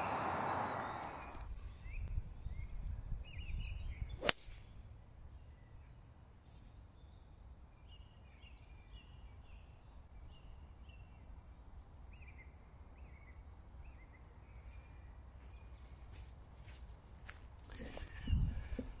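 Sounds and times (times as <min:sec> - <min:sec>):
wind rumble on microphone: 0:00.0 - 0:04.8, 0:17.8 - 0:19.0
golf club striking ball: 0:04.2 - 0:04.8.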